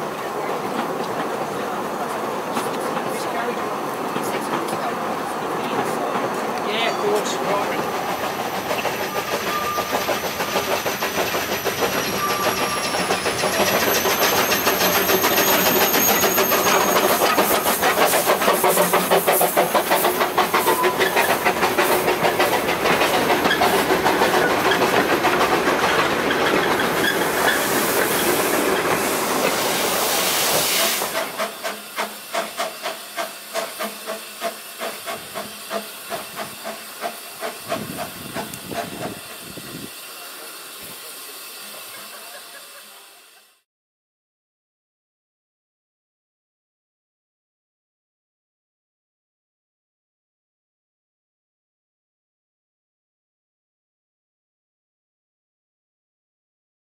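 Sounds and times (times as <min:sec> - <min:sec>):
train rolling past: 0:00.0 - 0:43.6
wheels clattering over rail joints: 0:00.2 - 0:29.7
steam locomotive exhaust puffing: 0:07.9 - 0:43.6.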